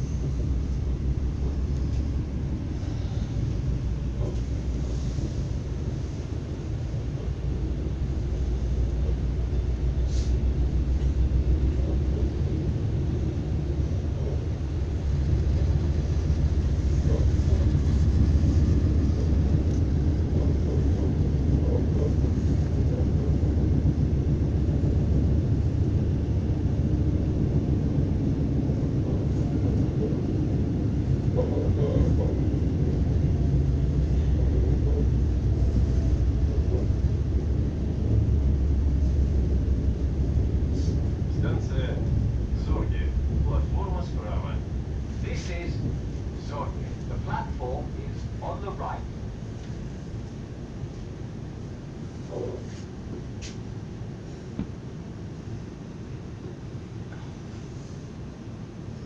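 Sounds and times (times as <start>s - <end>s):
electric train rumble inside car: 0.0s - 59.0s.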